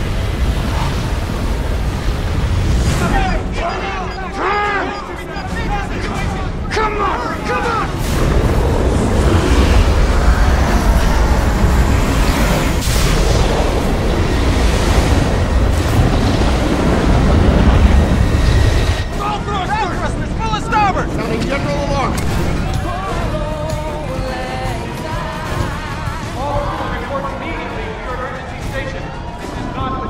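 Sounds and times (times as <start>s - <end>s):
deep rushing rumble of water: 0.0s - 4.0s, 5.1s - 30.0s.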